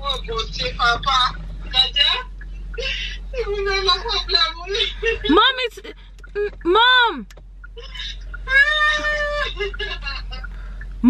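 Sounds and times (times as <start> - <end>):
people talking: 0.0 - 10.5.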